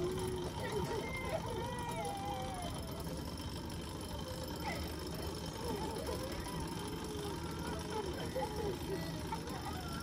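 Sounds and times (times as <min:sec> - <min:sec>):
faint indistinct speech: 0:00.0 - 0:10.0.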